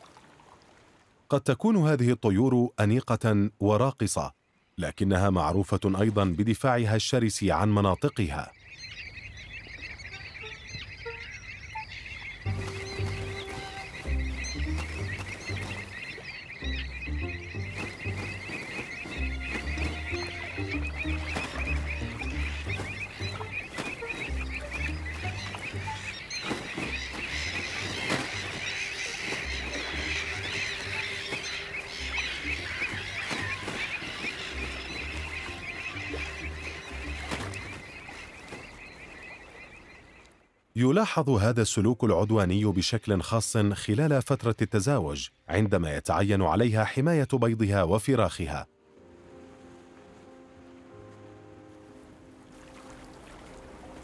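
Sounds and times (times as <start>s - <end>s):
shorebirds calling: 3.8s - 54.0s
pulsing bass background music: 12.5s - 15.8s, 16.6s - 26.2s.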